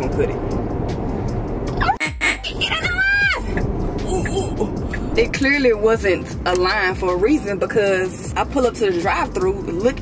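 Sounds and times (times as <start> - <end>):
road and tyre noise in car: 0.0 - 10.0.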